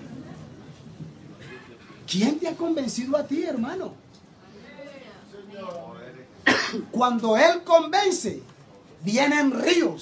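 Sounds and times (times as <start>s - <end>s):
man coughing into microphone: 1.4s - 2.1s, 6.4s - 7.0s.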